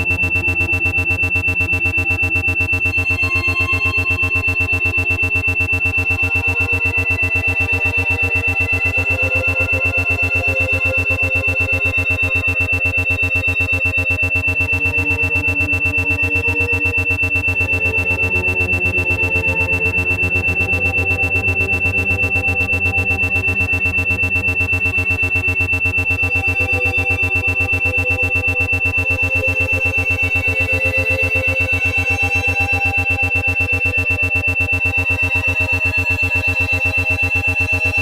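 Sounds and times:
ambient synth pads: 0:00.0 - 0:38.0
low pulsing hum: 0:00.0 - 0:38.0
pulsing isochronic tones: 0:00.0 - 0:38.0
steady high tone: 0:00.0 - 0:38.0.

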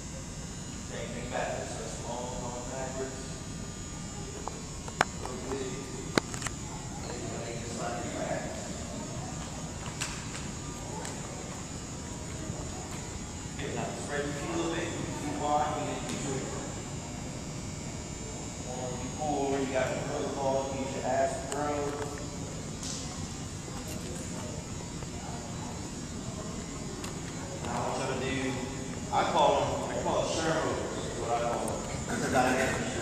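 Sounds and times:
steady background hum: 0:00.0 - 0:33.0.

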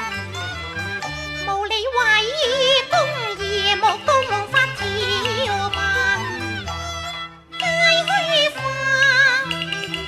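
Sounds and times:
instrumental accompaniment: 0:00.0 - 0:10.0
woman singing opera: 0:01.5 - 0:06.4, 0:07.6 - 0:09.6.

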